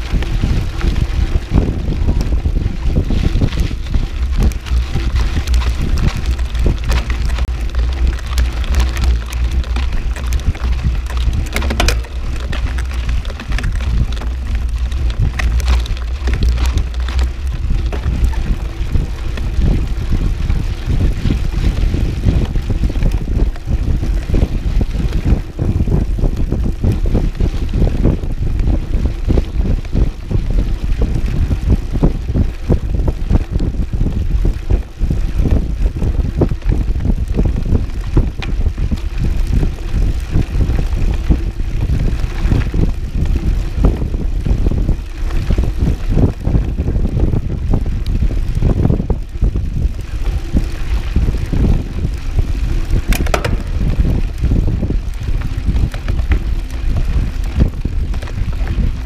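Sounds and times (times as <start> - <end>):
bike rattling on gravel: 0.0 - 59.0
low rumble: 0.0 - 59.0
wind buffeting microphone: 0.0 - 59.0.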